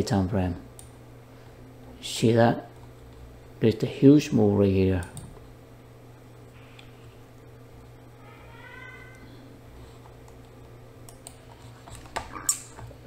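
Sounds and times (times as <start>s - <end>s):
steady low hum: 0.0s - 13.0s
keyboard and mouse clicks: 10.2s - 13.0s.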